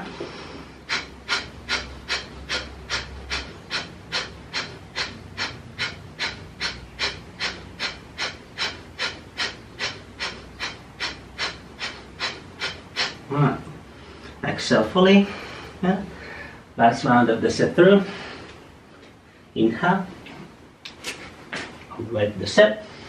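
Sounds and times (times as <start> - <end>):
man exhaling forcefully: 0.0 - 13.3.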